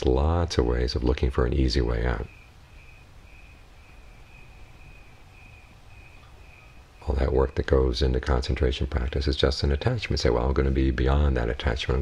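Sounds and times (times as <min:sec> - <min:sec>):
low steady rumble: 0:00.0 - 0:12.0
cricket chirping: 0:00.8 - 0:12.0.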